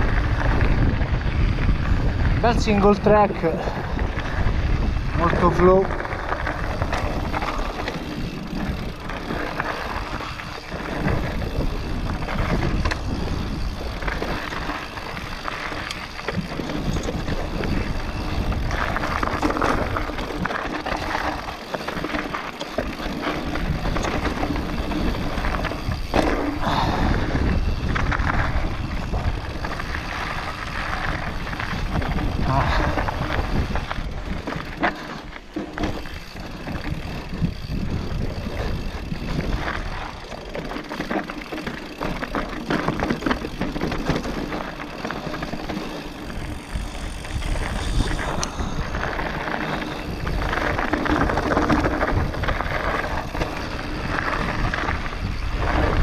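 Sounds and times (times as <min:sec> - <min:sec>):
wind on microphone: 0:00.0 - 0:22.2, 0:23.0 - 0:35.1, 0:35.8 - 0:40.4, 0:45.4 - 0:56.0
bike rattling: 0:00.0 - 0:56.0
tyres crackling over dirt and stones: 0:00.0 - 0:56.0.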